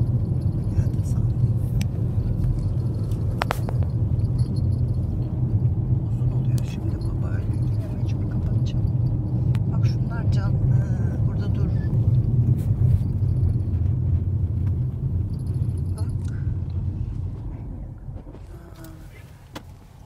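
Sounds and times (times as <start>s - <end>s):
car engine and tyres rumbling: 0.0s - 20.0s.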